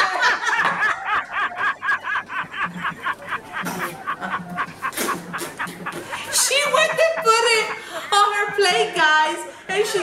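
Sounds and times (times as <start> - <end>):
pulsing laughter: 0.0 - 8.8.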